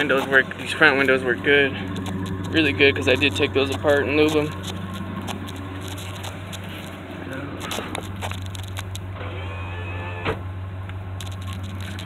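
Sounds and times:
power window motor humming: 7.7s - 10.4s.

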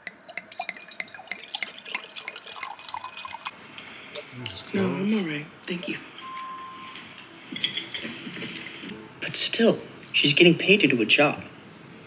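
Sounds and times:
wine pouring into a glass: 0.0s - 3.5s.

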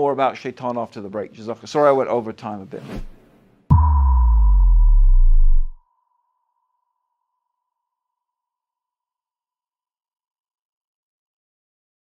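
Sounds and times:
deep boom falling in pitch: 3.7s - 5.8s.

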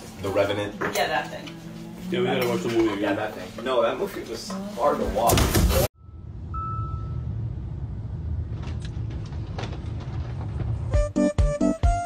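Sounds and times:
faint thin high tone: 6.0s - 7.4s.

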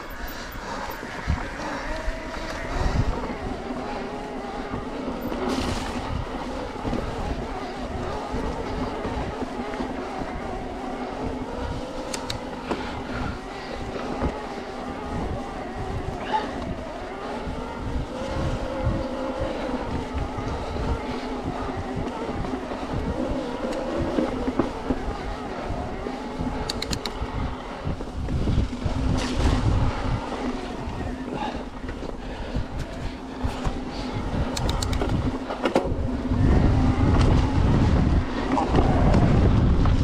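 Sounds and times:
electric bike motor whining: 0.0s - 40.0s.

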